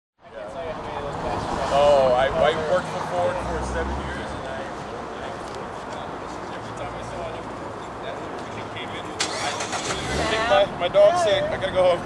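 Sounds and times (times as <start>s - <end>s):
murmur of people talking: 0.2s - 12.0s
car engine starting: 9.1s - 10.6s.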